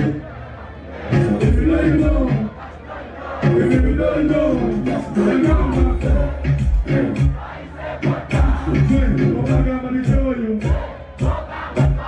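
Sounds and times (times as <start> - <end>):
crowd cheering: 0.0 - 8.8
amplified music with heavy bass: 0.0 - 12.0.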